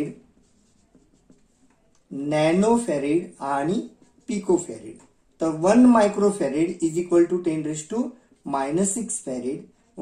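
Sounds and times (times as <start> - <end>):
marker writing on paper: 0.0 - 10.0.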